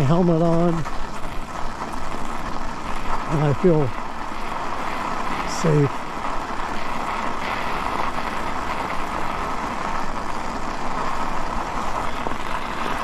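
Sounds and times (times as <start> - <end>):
bicycle tyres rolling on snow: 0.0 - 13.0.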